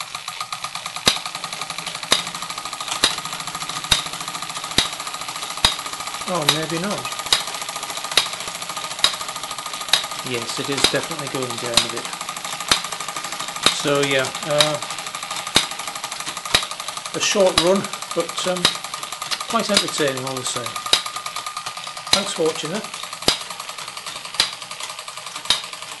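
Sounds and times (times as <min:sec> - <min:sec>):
model steam engine running: 0:00.0 - 0:26.0
sharp mechanical clicks: 0:00.0 - 0:26.0.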